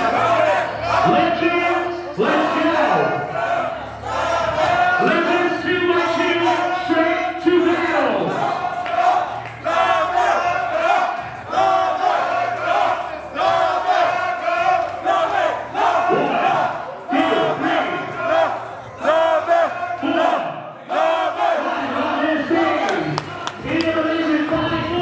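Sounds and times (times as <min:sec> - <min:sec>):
crowd shouting and cheering: 0:00.0 - 0:25.0.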